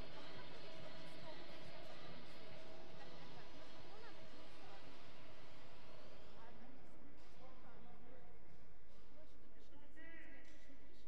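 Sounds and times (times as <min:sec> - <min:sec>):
murmur of people in a hall: 0:00.0 - 0:11.0.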